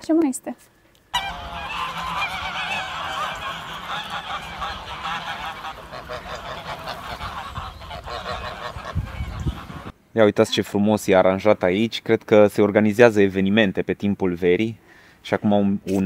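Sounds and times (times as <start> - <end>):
geese honking: 1.1 - 9.9.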